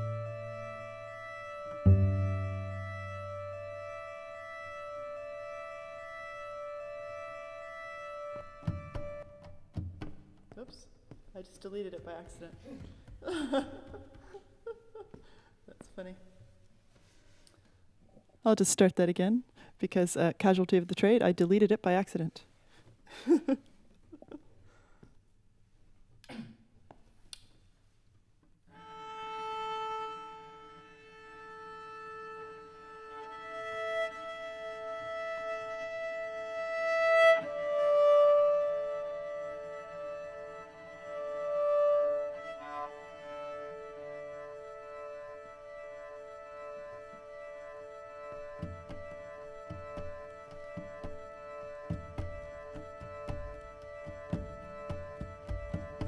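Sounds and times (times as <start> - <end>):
low cello note: 0.0 - 9.3
cello drone: 0.0 - 9.5, 28.7 - 56.0
knock: 48.6 - 51.3, 51.9 - 56.0.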